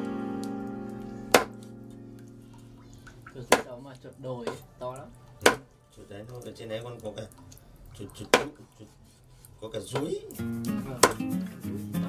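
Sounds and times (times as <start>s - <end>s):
knife chopping meat on wood: 1.3s - 1.6s, 3.5s - 3.7s, 5.4s - 5.7s, 11.0s - 11.3s.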